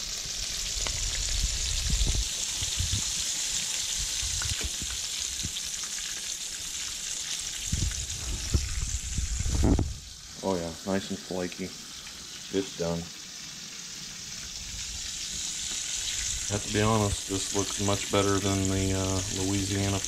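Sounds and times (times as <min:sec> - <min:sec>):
fish frying in hot oil: 0:00.0 - 0:20.0.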